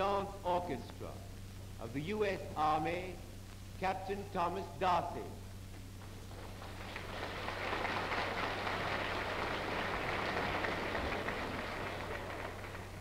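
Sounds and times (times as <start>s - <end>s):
crowd applauding: 6.4s - 13.0s.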